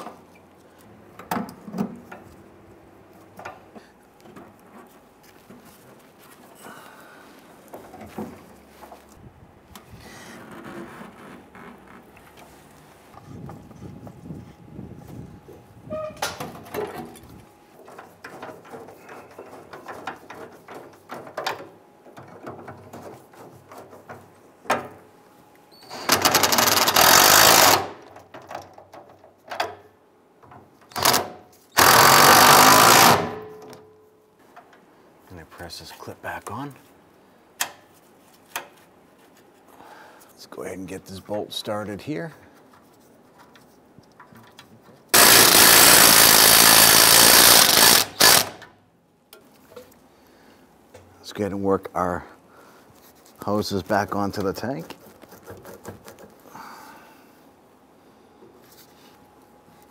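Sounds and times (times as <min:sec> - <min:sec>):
handling of parts: 0:15.0 - 0:25.0, 0:42.3 - 0:45.3
impact wrench bursts: 0:26.0 - 0:28.0, 0:30.9 - 0:33.5, 0:45.1 - 0:48.7.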